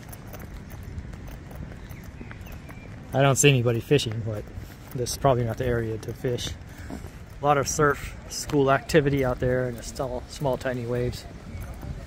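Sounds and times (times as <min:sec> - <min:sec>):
footsteps on stone paving: 0:00.0 - 0:12.0
low outdoor background: 0:00.0 - 0:12.0.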